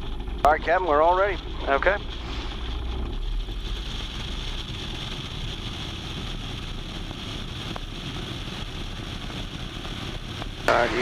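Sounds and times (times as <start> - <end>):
light plane engine and propeller: 0.0 - 11.0
wind rushing over microphone: 2.4 - 11.0.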